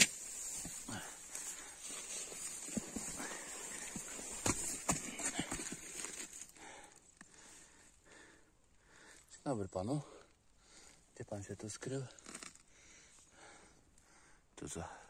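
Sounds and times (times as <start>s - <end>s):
footsteps crunching on gravel: 0.0s - 6.5s.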